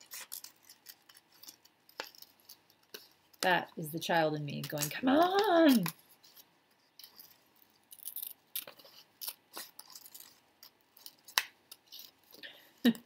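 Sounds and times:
scissors snipping paper: 0.0 - 3.5.

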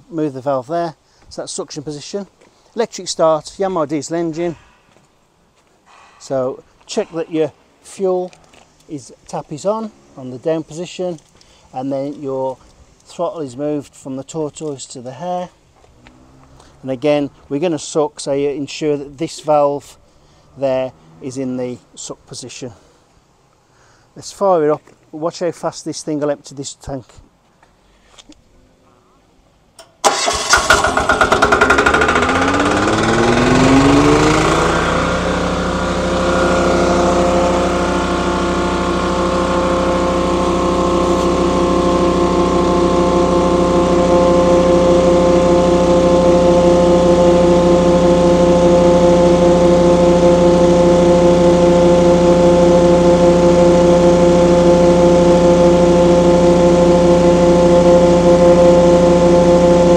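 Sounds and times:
diesel engine running: 15.8 - 17.5, 30.0 - 59.9
electric starter cranking: 29.8 - 59.9
vacuum pump on suction: 30.6 - 44.4.

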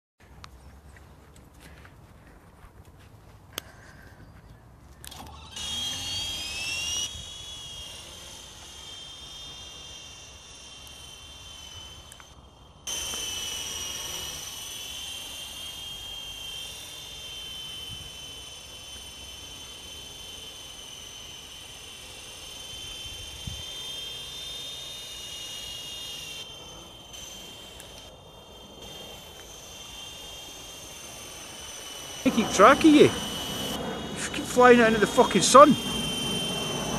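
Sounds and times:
model helicopter motor whine: 3.5 - 36.9.

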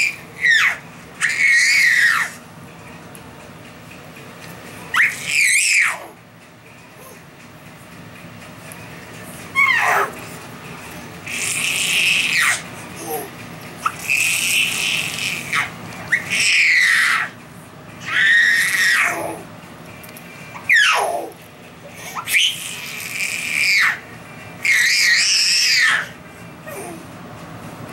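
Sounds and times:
baby squealing: 0.0 - 2.4, 4.9 - 6.1, 9.5 - 10.2, 11.3 - 17.4, 18.0 - 19.4, 20.6 - 21.3, 22.2 - 24.0, 24.6 - 27.0.

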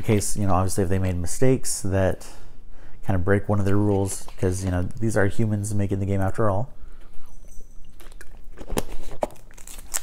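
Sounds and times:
plastic bottle crinkling: 8.0 - 10.0.

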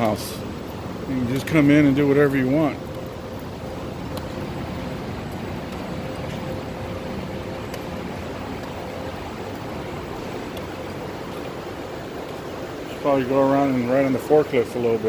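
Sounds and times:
faint constant tone: 0.0 - 15.0
machinery and air-handling hum: 0.0 - 15.0.

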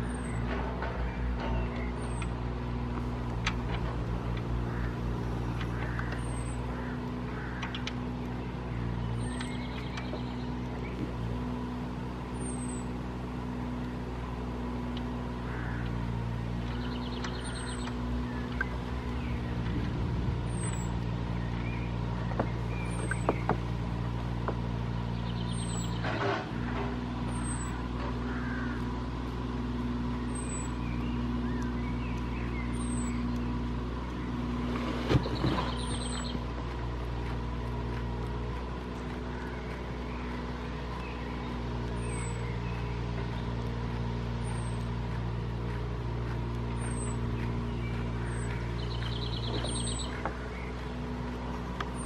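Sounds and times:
low motor drone: 0.0 - 52.0.

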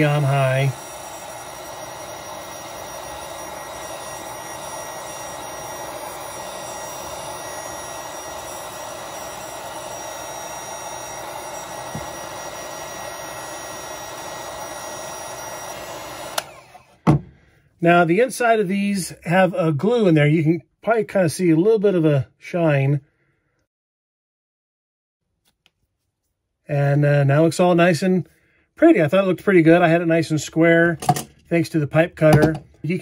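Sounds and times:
heat gun whirring: 0.0 - 17.3.

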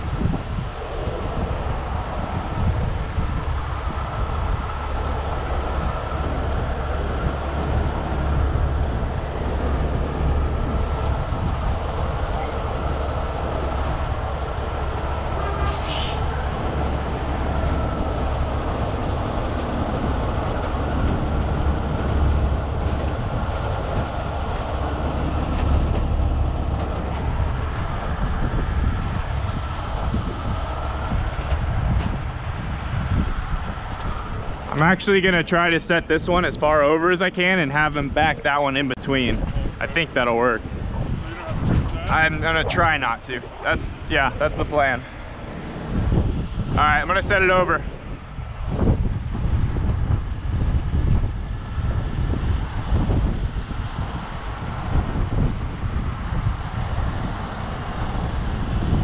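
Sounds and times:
diesel truck engine running: 0.0 - 59.0
engine whine: 0.0 - 59.0
short hiss: 15.7 - 16.2.

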